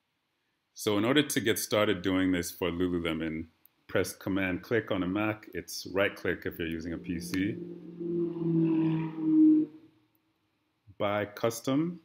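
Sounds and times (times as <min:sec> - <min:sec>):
man's drawn-out hesitation sound: 0:05.8 - 0:08.0.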